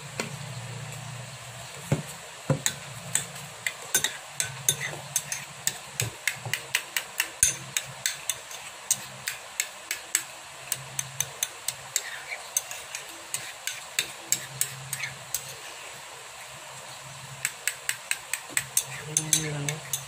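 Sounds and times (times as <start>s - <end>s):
metal spoon clinking on ceramic bowl: 3.9s - 5.8s, 7.4s - 9.0s, 18.6s - 20.0s.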